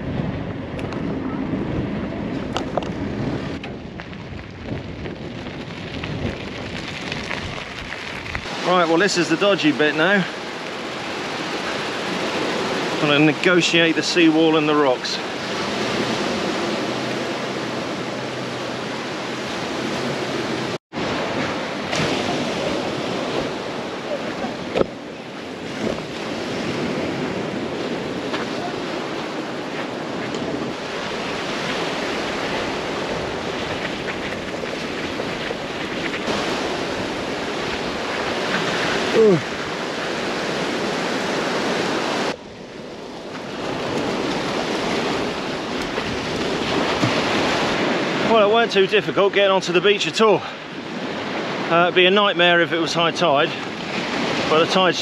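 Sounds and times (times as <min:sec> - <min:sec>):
wind on microphone: 0:00.0 - 0:08.7, 0:15.2 - 0:48.3
small waves breaking on shore: 0:05.6 - 0:55.0.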